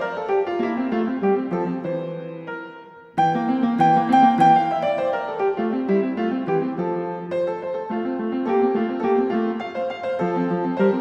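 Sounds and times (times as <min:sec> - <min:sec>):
plucked instrumental melody: 0:00.0 - 0:11.0.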